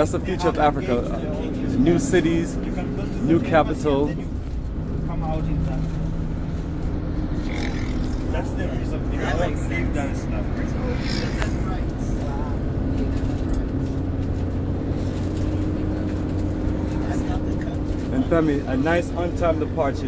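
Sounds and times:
faint passenger voices: 0.0s - 6.7s, 7.3s - 20.0s
bus engine drone: 0.0s - 20.0s
road noise: 0.0s - 20.0s.

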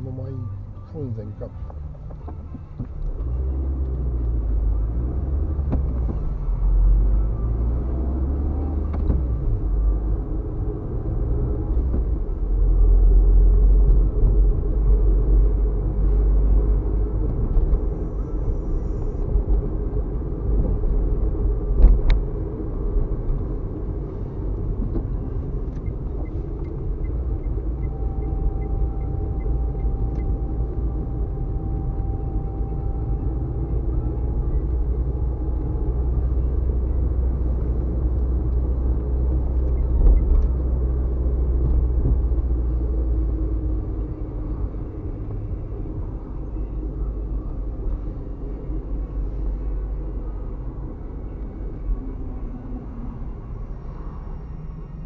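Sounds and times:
car engine and tyres rumbling: 0.0s - 55.0s.

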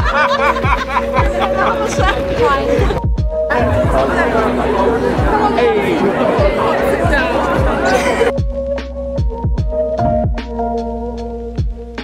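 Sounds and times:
crowd chattering: 0.0s - 8.3s
music with steady beat: 0.0s - 12.0s.

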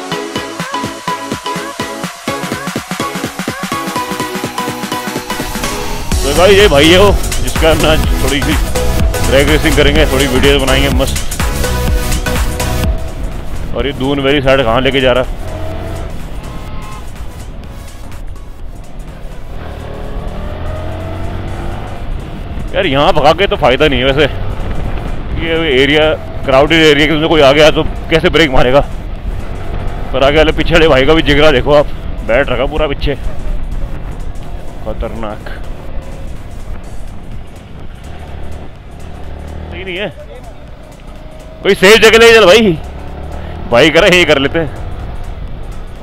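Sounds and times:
background music: 0.0s - 46.0s
road and wind noise: 0.0s - 46.0s
motorcycle engine running: 2.3s - 46.0s.

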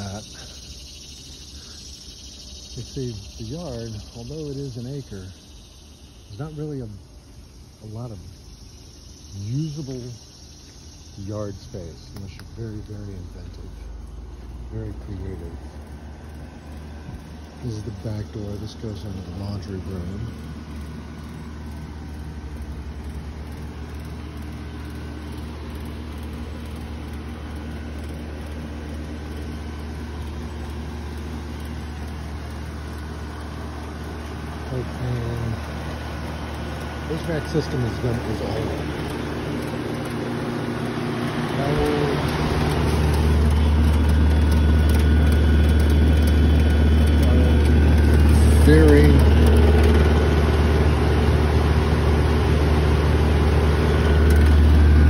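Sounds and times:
air conditioner unit humming: 0.0s - 55.0s.

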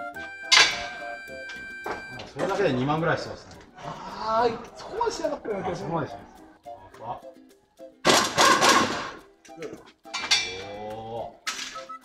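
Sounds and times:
background music: 0.0s - 12.0s
voices: 1.9s - 7.4s.

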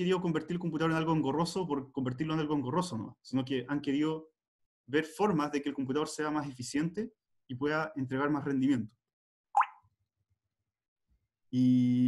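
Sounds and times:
pop with rising pitch: 9.6s - 9.8s.

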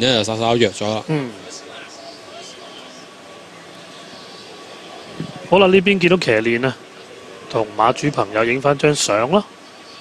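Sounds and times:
outdoor background hum: 0.0s - 10.0s.

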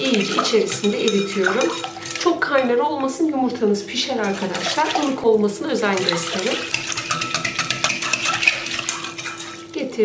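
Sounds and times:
whisk clicking against glass bowl: 0.0s - 2.3s, 5.9s - 9.6s.

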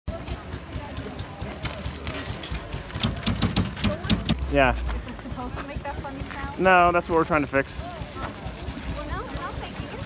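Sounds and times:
low running rumble: 0.4s - 10.0s.

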